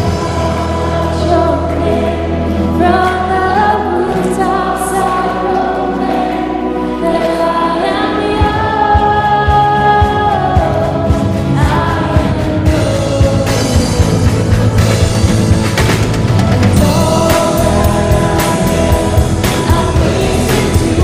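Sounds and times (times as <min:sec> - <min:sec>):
worship band playing: 0:00.0 - 0:21.0
drum beats: 0:08.4 - 0:21.0.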